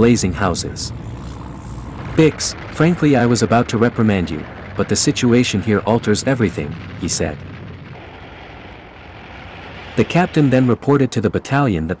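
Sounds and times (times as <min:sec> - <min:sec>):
rumble of vehicles: 0:00.0 - 0:12.0.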